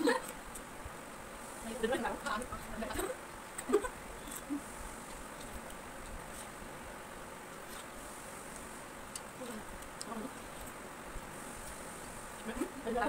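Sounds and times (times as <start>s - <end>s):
people eating watermelon: 0.0s - 0.7s, 1.4s - 6.6s, 7.5s - 13.0s
steady high-pitched hiss: 0.0s - 13.0s.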